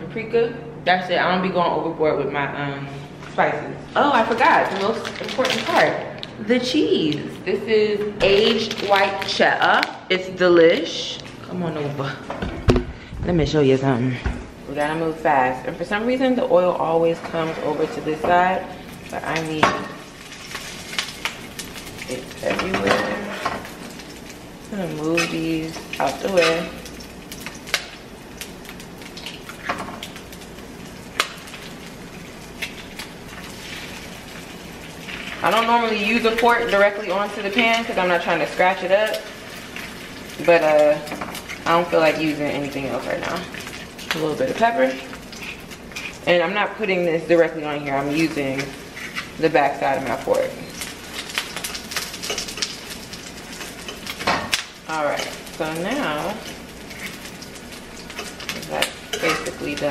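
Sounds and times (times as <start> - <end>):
onion sizzling in oil: 14.5 - 59.9
metal fork scraping frying pan: 26.3 - 26.8, 58.1 - 59.7.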